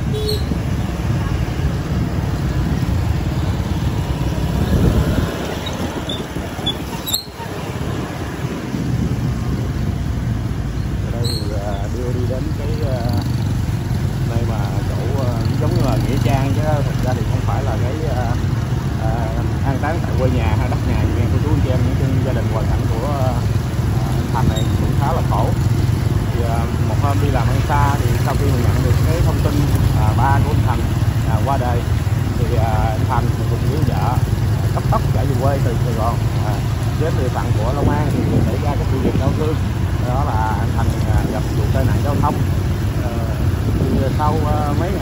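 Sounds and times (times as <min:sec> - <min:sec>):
voices talking indistinctly: 0:00.0 - 0:10.0, 0:10.7 - 0:45.0
motorbike engines running: 0:00.0 - 0:45.0.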